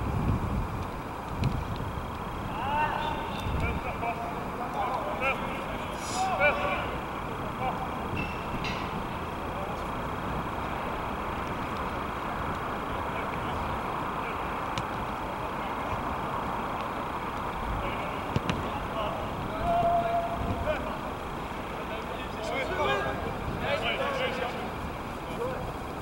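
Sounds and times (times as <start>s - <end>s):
steady background hiss: 0.0s - 26.0s
distant shouts: 2.4s - 11.2s, 17.0s - 25.8s.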